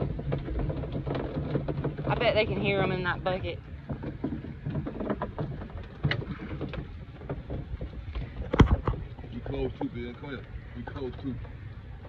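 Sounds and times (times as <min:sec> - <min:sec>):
low steady rumble: 0:00.0 - 0:12.0
water splashing against boat: 0:00.0 - 0:12.0.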